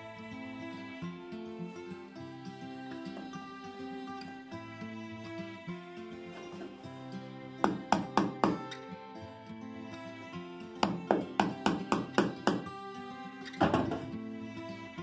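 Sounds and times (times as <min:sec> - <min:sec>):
acoustic guitar music: 0:00.0 - 0:15.0
chisel strikes on wood: 0:07.6 - 0:08.7, 0:10.8 - 0:12.7.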